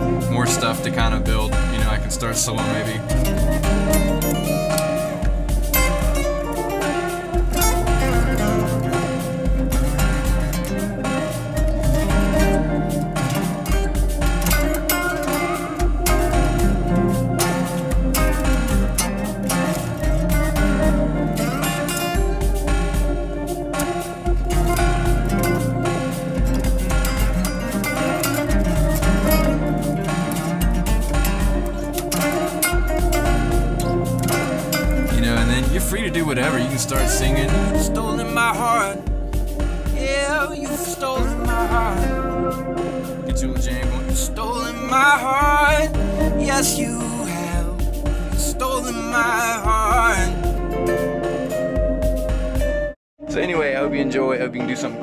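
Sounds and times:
layered guitar loop: 0.0 - 53.0
electric guitar picking notes: 0.0 - 53.9.

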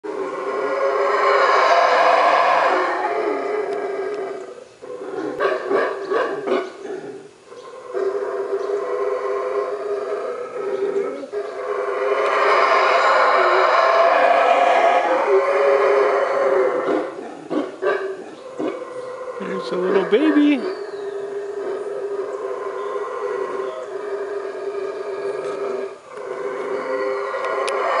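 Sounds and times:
howler monkeys howling: 0.0 - 28.0.

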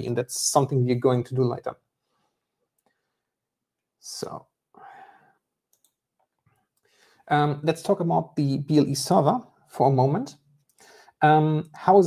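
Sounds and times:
faint breath: 4.8 - 5.5, 6.8 - 7.3, 10.8 - 11.2.

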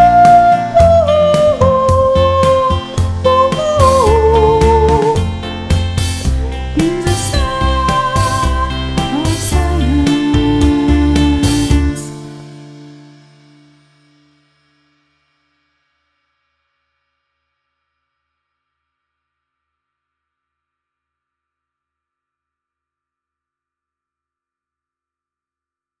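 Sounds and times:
guitar chord ringing out: 0.0 - 14.4.

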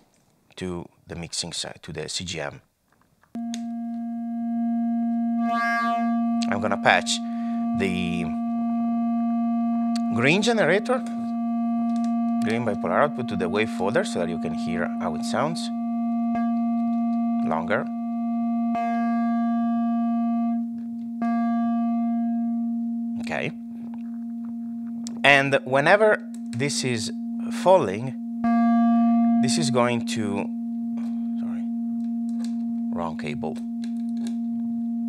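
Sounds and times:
synthesizer drone: 3.4 - 35.0.

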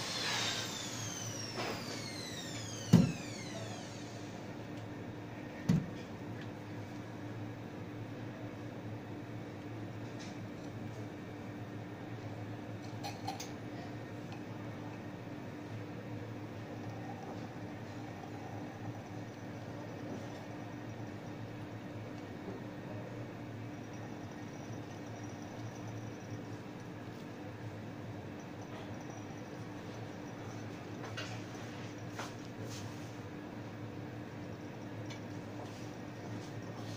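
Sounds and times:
electrical hum: 0.0 - 36.9.

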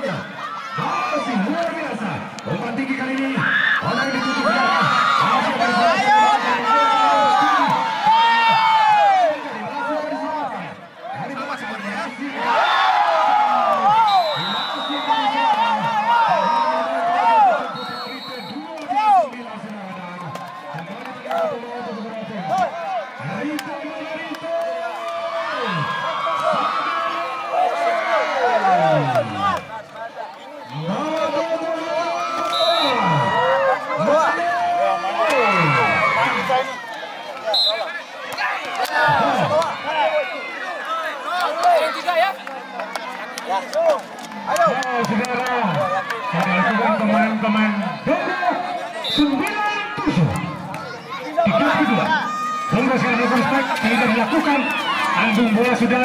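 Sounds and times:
crowd cheering and shouting: 0.0 - 56.0.

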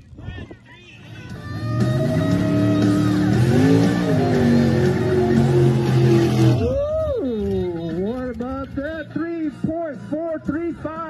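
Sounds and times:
truck engine at high revs: 1.4 - 6.8.

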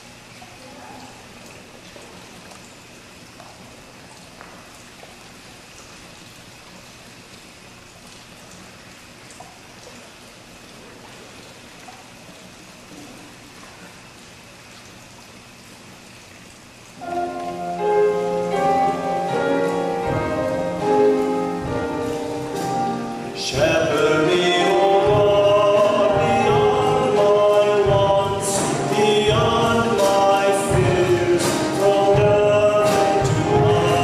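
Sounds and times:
instrumental music chords: 17.0 - 34.0.

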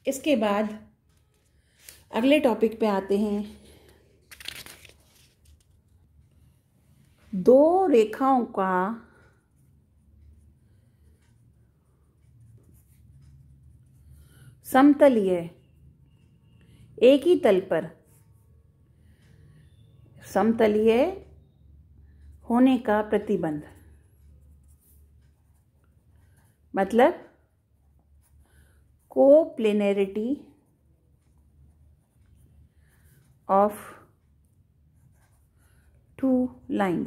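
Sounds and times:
person speaking: 1.8 - 3.7
pen scratching on paper: 12.4 - 14.4, 31.3 - 33.2, 34.9 - 36.2.

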